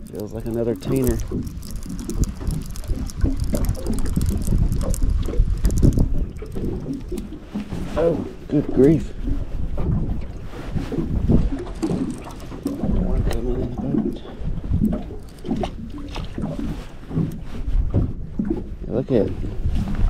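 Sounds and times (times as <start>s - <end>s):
fishing reel being cranked: 0.0s - 7.3s, 11.7s - 13.5s, 15.0s - 15.7s
water lapping against boat hull: 0.0s - 20.0s
wind rumbling on microphone: 0.0s - 20.0s.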